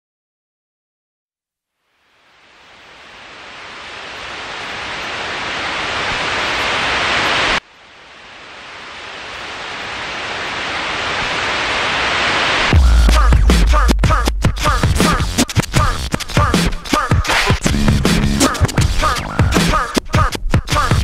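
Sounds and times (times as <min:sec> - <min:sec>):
static hiss: 0:01.6 - 0:20.2.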